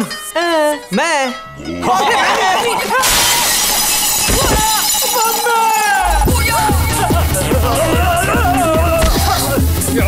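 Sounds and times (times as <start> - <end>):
broken glass tinkling: 2.7 - 6.9
glass window shattering: 2.9 - 6.6.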